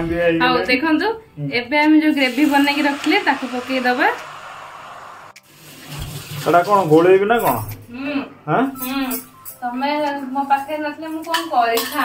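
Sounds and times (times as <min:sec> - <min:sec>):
hot oil sizzling in a frying pan: 0:02.1 - 0:07.2.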